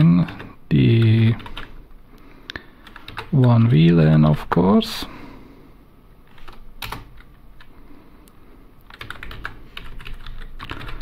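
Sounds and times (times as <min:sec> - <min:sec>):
keyboard typing: 0:00.2 - 0:01.8, 0:02.8 - 0:03.9, 0:06.3 - 0:07.7, 0:08.8 - 0:11.0.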